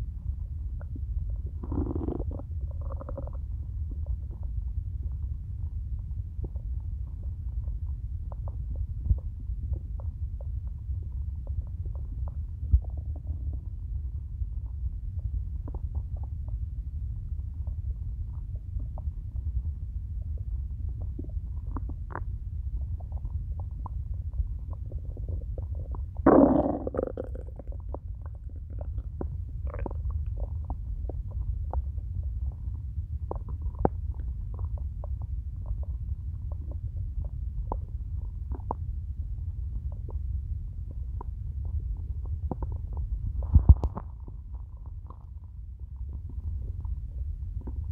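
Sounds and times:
stomach growling and gurgling: 0.0s - 47.9s.

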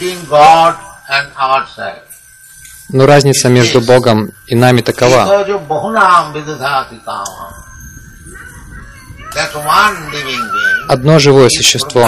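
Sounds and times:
man speaking: 0.0s - 2.1s, 2.9s - 7.6s, 9.3s - 12.0s.

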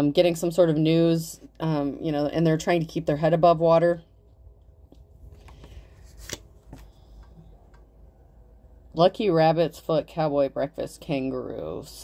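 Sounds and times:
cards rustling: 5.3s - 7.2s.

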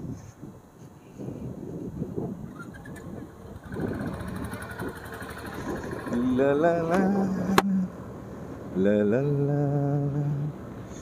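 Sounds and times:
wind rumble on microphone: 0.0s - 8.0s
scooter engine: 2.5s - 7.6s.

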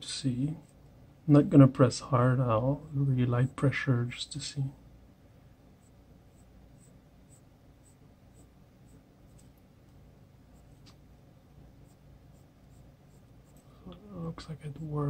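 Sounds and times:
colored pencil scratching paper: 5.8s - 9.5s, 10.5s - 11.0s, 11.8s - 13.7s.

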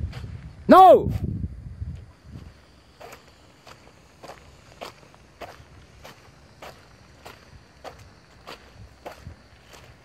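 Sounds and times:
footsteps on wet gravel: 2.0s - 10.0s.

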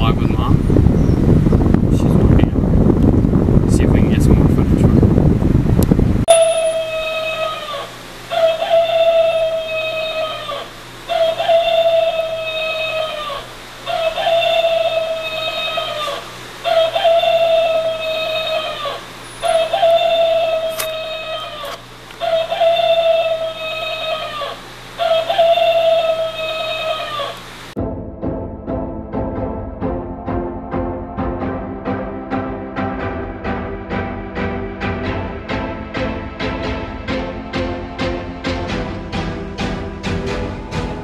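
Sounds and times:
rooster alarm clock crowing: 6.3s - 27.6s.

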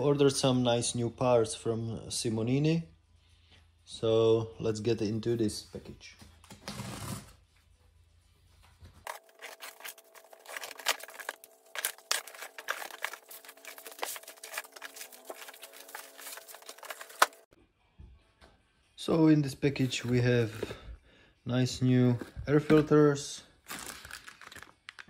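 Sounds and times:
cardboard and plastic rustling: 8.8s - 17.6s, 22.0s - 25.0s
blade slitting packing tape: 9.1s - 17.4s.

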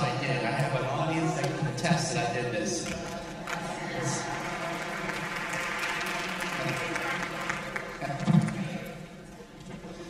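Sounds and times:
audience laughing and chattering: 2.1s - 10.0s
scattered clapping: 2.8s - 8.7s.

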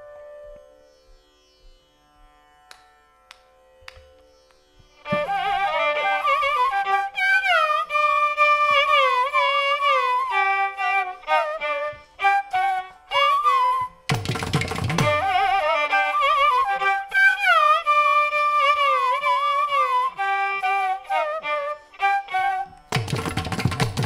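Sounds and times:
violin and flute melody: 0.0s - 1.2s, 5.0s - 24.0s
soft taps: 2.7s - 5.3s.

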